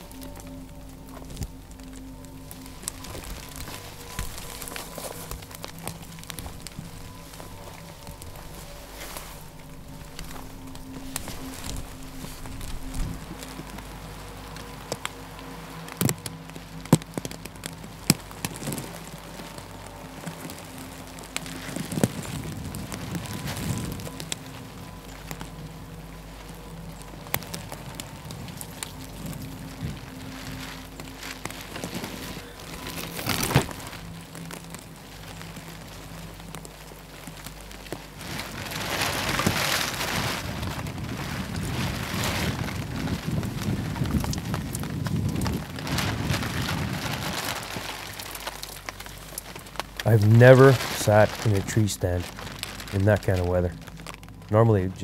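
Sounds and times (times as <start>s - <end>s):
rain on a tarp: 0.0s - 55.0s
tarp flapping: 0.0s - 55.0s
wind gusting: 0.0s - 55.0s.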